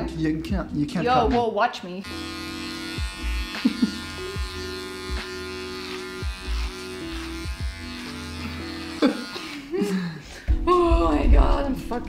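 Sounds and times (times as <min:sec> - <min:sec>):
electric trimmer buzzing: 0:02.0 - 0:09.8.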